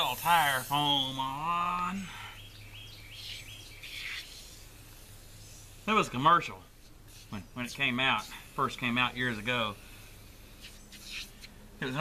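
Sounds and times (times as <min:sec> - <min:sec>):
aerosol can spraying hisses: 0:00.0 - 0:01.3, 0:03.2 - 0:06.2, 0:07.0 - 0:11.6.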